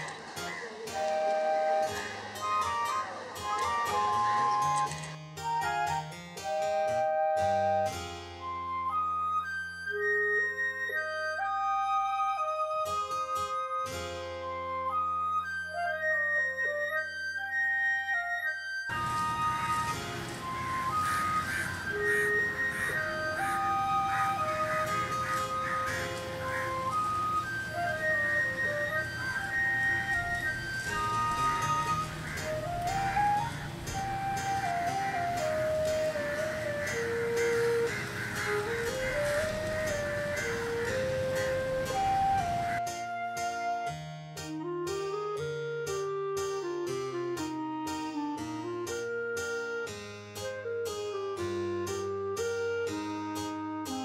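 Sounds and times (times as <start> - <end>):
light instrumental melody: 0.0 - 54.0
steady hiss: 18.9 - 42.8.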